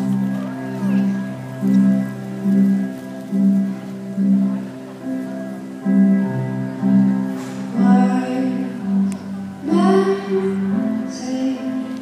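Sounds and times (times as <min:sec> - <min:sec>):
music with pulsing low notes: 0:00.0 - 0:12.0.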